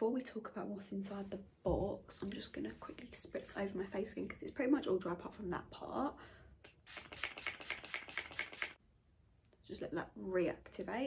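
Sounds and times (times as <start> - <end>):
pump spray bottle spritzing: 6.7 - 8.8.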